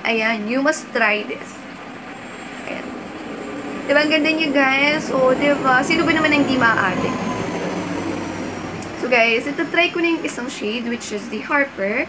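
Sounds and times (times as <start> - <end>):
hiss-like hum: 0.6 - 12.0.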